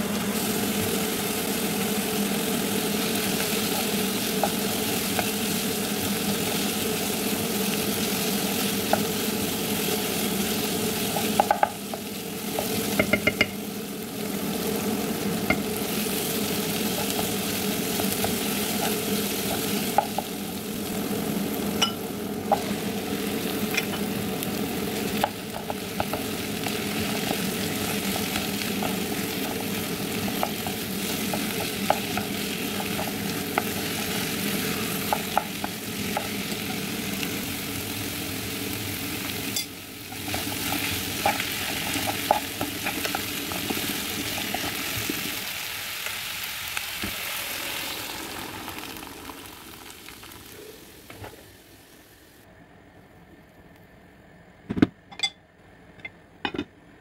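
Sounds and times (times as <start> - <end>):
vegetables sizzling in a pot: 0.0 - 52.5.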